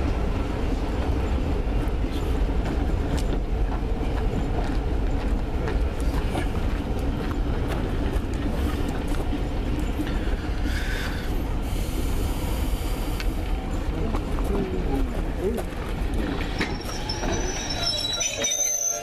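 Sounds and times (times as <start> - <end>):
train coaches rumbling past: 0.0 - 19.0
high wheel squeal: 16.4 - 19.0.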